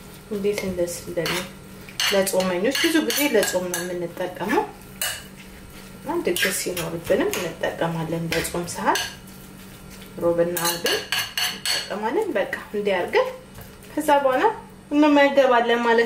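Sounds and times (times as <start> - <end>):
metal spoon clinking in ceramic bowl: 10.6 - 11.9.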